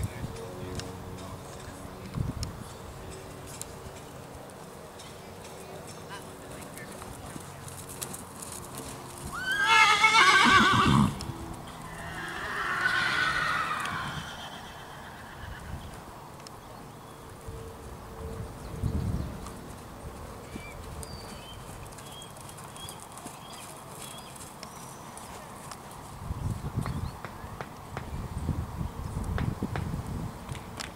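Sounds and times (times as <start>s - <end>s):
horse whinnying: 9.3s - 11.2s, 11.9s - 15.9s
faint hoofbeats on sand: 18.2s - 28.3s.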